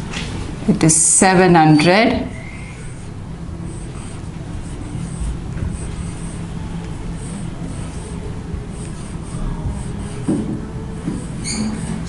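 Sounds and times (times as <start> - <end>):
low background rumble: 2.3 - 11.1
marker writing on whiteboard: 2.6 - 3.1, 3.7 - 12.0.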